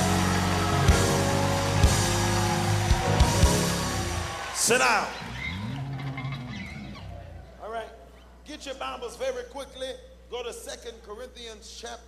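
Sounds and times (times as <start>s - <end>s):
church band music: 0.0s - 5.2s.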